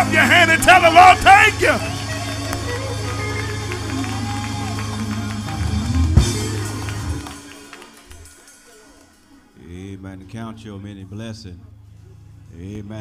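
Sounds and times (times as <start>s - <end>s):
church music: 0.0s - 8.9s.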